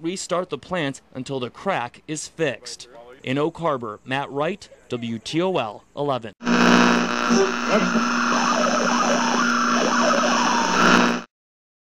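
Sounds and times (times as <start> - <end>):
siren-like wavering tone: 6.4 - 11.3.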